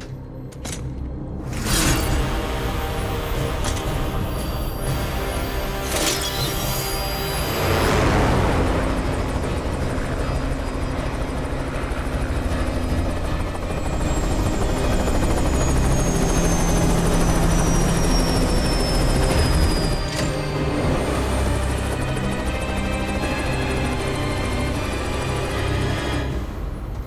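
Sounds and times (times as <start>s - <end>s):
dramatic score: 0.0s - 27.0s.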